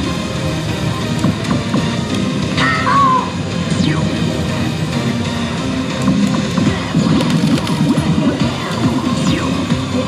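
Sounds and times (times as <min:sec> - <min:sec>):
loud busy music and electronic din: 0:00.0 - 0:10.0.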